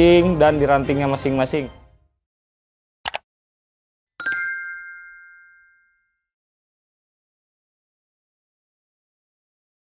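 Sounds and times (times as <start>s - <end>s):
bright bell-like ding: 4.2s - 6.2s.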